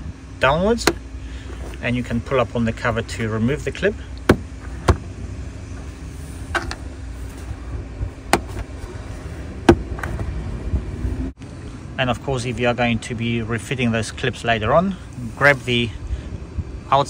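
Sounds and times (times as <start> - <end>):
steady low rumble: 0.0 - 17.0.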